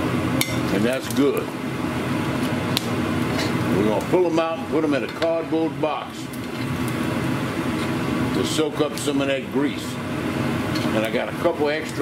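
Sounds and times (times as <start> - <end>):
pork deep-frying in oil: 0.0 - 12.0.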